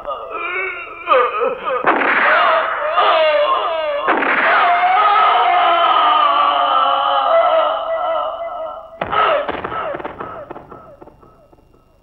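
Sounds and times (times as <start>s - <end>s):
man screaming: 0.2s - 10.4s
loud ringing impact: 9.0s - 12.0s.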